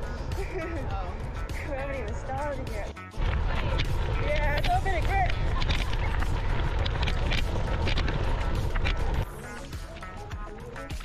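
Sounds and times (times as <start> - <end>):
wind rumble on microphone: 0.0 - 9.3
background music: 0.0 - 11.0
bike tyres on gravel: 3.1 - 11.0.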